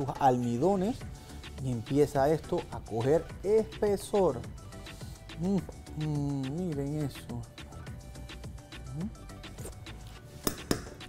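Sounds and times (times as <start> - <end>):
background music: 0.0 - 11.0
spatula knocking on metal pot: 10.5 - 11.0.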